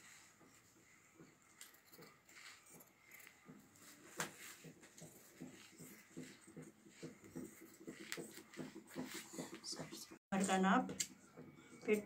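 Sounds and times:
shears snipping fabric: 1.5s - 11.1s.

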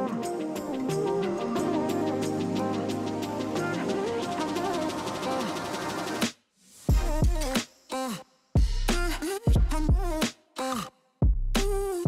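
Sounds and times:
instrumental background music: 0.0s - 6.3s.

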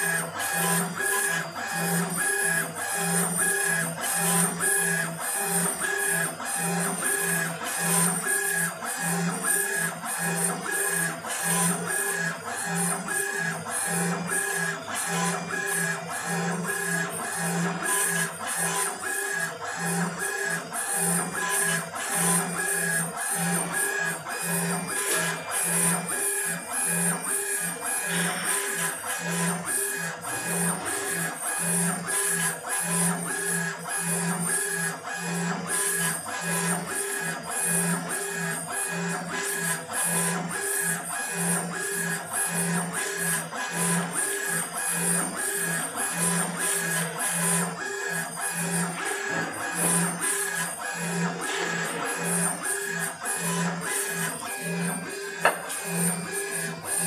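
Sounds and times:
engraving machine motors whining: 0.0s - 37.3s, 41.6s - 57.0s.

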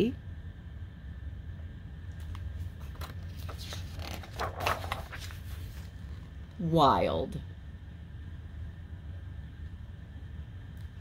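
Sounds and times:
low room hum: 0.0s - 11.0s
book page turning rustle: 2.2s - 6.3s.

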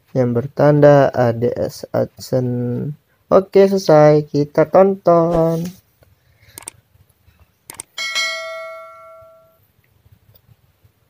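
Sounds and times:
bell ding: 8.0s - 9.6s.

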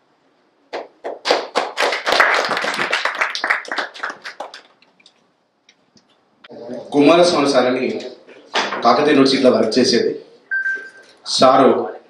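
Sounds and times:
small audience clapping: 0.7s - 5.2s.

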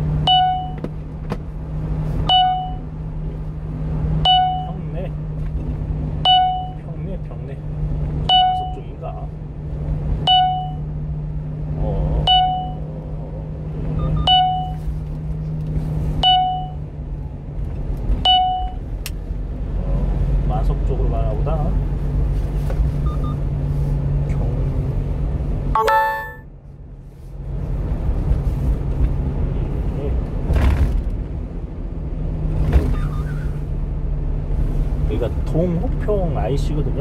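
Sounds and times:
truck engine and road drone: 0.0s - 37.0s
electronic warning chimes: 4.3s - 4.8s, 12.3s - 12.8s, 25.8s - 26.4s
short electronic chime: 25.8s - 26.4s.

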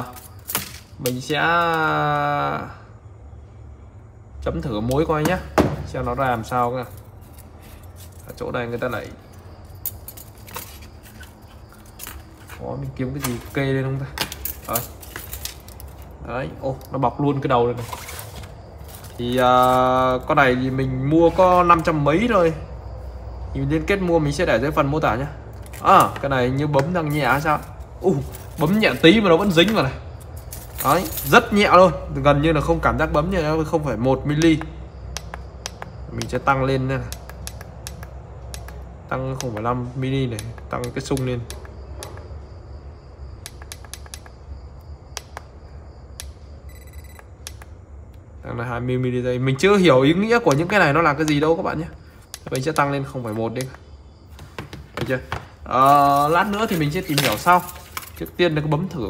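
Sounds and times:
small metal parts clicking: 6.3s - 12.6s, 13.2s - 17.0s, 27.0s - 31.6s, 55.8s - 58.4s.

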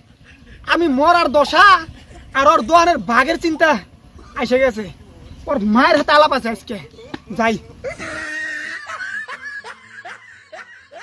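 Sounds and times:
snickering laughter: 7.8s - 11.0s.

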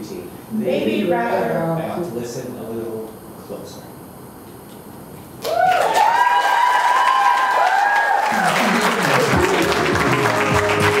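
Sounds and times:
closing music with swooping tones: 9.2s - 11.0s.

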